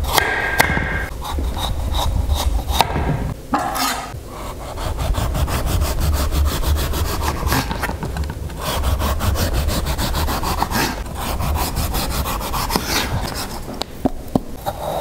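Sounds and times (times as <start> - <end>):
serrated knife sawing pumpkin skin: 3.7 - 7.9, 8.5 - 13.7.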